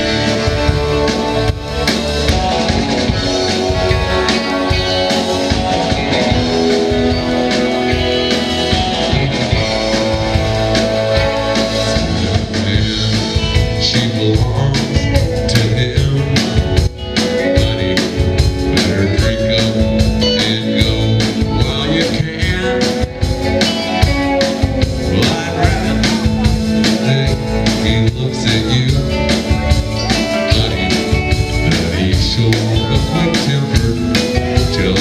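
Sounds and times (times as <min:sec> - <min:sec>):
drum kit: 0:00.0 - 0:35.0
electric guitars: 0:00.0 - 0:35.0
upright bass: 0:00.0 - 0:35.0.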